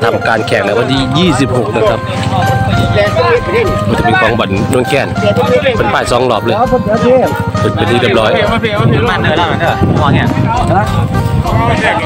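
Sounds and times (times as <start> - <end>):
music with long held notes: 0.0 - 12.0.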